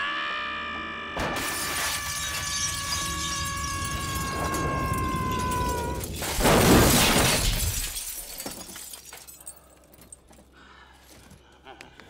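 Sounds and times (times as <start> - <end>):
glass shattering: 1.2 - 10.1
glass shards raining down: 1.4 - 9.6.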